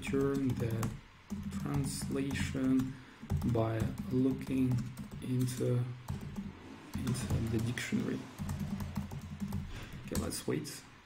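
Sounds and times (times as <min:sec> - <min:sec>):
typing on computer keyboard: 0:00.0 - 0:10.4.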